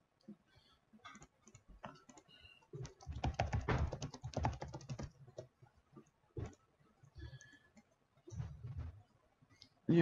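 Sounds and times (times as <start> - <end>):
typing on computer keyboard: 1.1 - 5.5.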